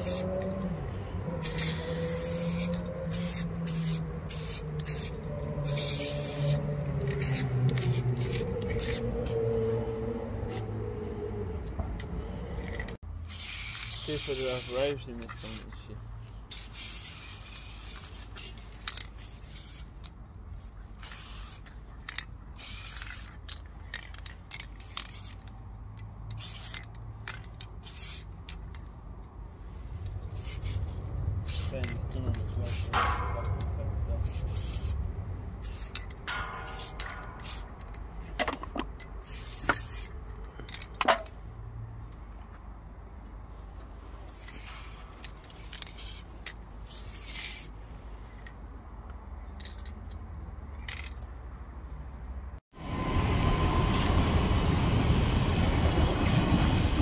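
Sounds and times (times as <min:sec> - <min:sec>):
spray-paint can hissing: 0:00.0 - 0:00.4, 0:01.4 - 0:09.1, 0:13.2 - 0:14.8, 0:16.6 - 0:20.0, 0:21.0 - 0:21.7, 0:22.6 - 0:23.4, 0:24.8 - 0:25.4, 0:26.3 - 0:26.8, 0:27.8 - 0:28.4, 0:29.8 - 0:31.7, 0:32.6 - 0:33.0, 0:34.2 - 0:35.0, 0:35.6 - 0:36.1, 0:36.7 - 0:37.7, 0:39.2 - 0:40.1, 0:44.3 - 0:47.7
low rumble: 0:52.8 - 0:57.0.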